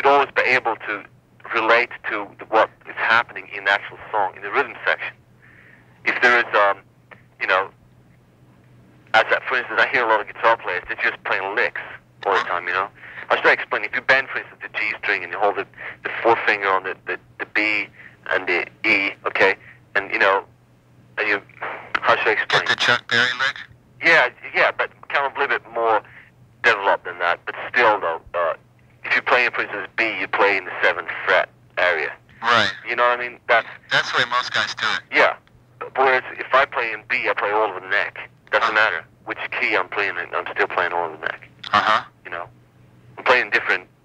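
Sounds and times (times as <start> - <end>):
man talking over telephone line: 0.0 - 7.8, 9.1 - 20.5, 21.2 - 42.5, 43.2 - 43.9
steady low hum: 0.0 - 44.0.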